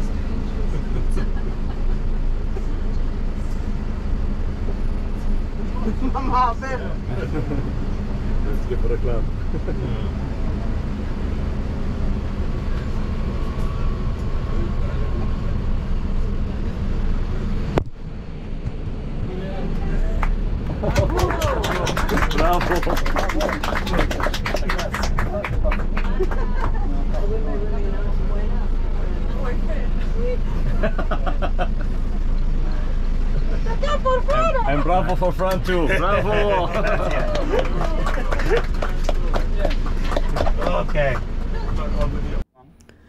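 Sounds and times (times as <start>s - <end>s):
bus engine and road rumble: 0.0s - 43.0s.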